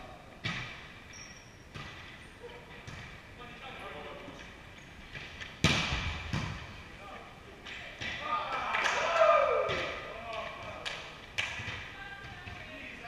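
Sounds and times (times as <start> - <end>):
volleyball being hit: 5.1 - 6.8, 7.8 - 12.6
players' voices: 6.8 - 13.0.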